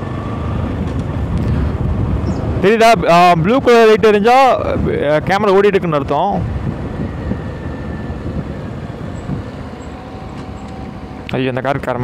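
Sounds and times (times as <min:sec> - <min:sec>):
motorcycle engine running: 0:00.0 - 0:12.0
road noise rumble: 0:00.0 - 0:12.0.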